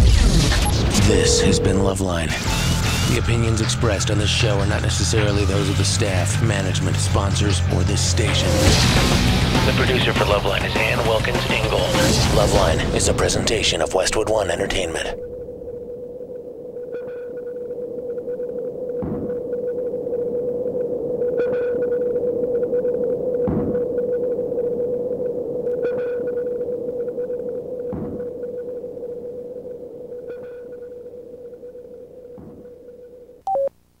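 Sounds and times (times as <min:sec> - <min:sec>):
short beeps: 0:00.6 - 0:04.9, 0:33.4 - 0:33.7
steady pulsing tone: 0:00.8 - 0:07.9, 0:15.2 - 0:33.4.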